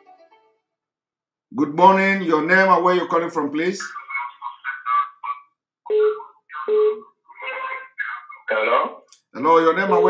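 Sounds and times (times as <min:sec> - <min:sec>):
tinny voice over telephone: 0:03.8 - 0:08.9.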